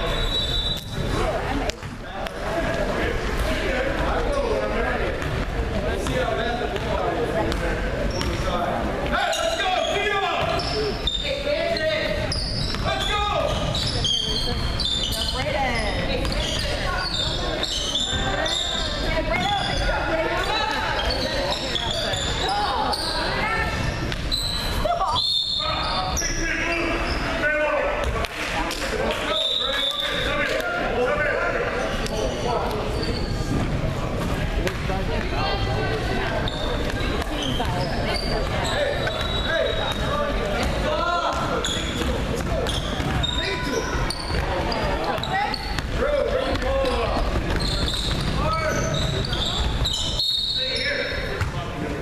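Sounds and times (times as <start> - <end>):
sneakers squeaking: 0.0 - 52.0.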